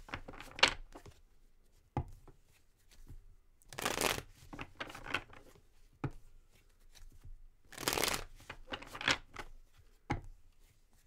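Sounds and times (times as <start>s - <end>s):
cards being shuffled: 3.7s - 5.4s, 6.6s - 9.5s.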